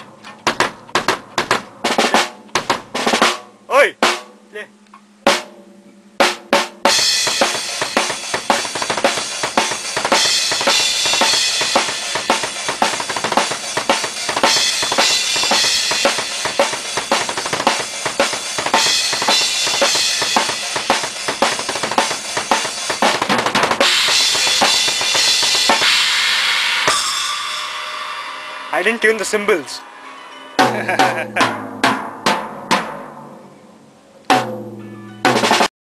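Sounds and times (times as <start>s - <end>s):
drum kit played hard: 0.0s - 29.8s, 30.6s - 33.4s, 34.3s - 35.7s
ringing cymbals: 23.9s - 30.7s.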